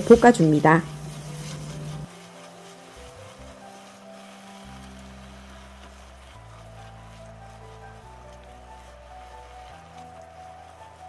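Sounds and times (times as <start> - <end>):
food sizzling in a frying pan: 0.0 - 11.0
soft background music: 0.0 - 11.0.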